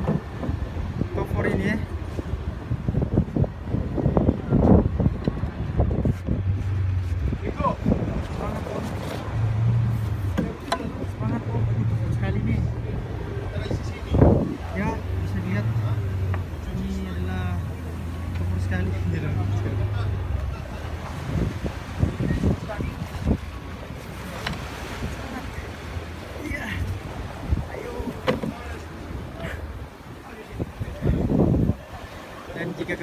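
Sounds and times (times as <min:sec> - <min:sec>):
boat engine humming: 0:00.0 - 0:33.0
wind buffeting microphone: 0:00.0 - 0:33.0.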